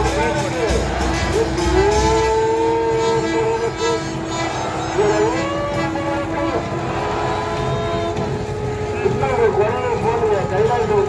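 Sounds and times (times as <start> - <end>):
festival crowd noise: 0.0 - 11.0
long steady held tones: 0.0 - 11.0.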